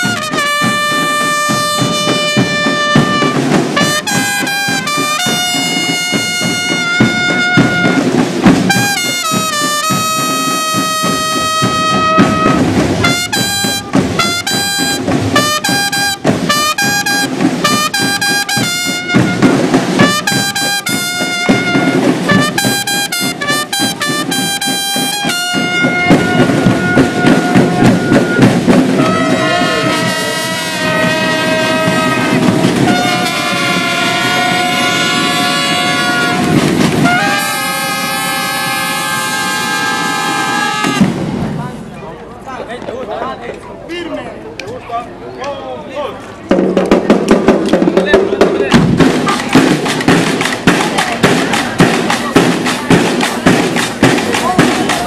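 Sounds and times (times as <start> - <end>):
trumpets playing fanfare: 0.0 - 41.3, 49.0 - 55.0
snare drums: 0.0 - 41.8, 46.4 - 55.0.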